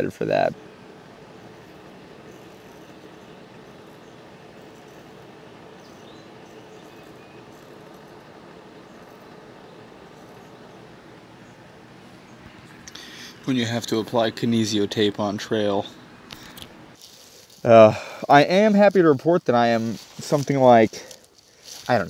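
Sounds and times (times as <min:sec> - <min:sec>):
faint background hum: 0:00.0 - 0:22.0
faint high chirp: 0:00.6 - 0:11.6.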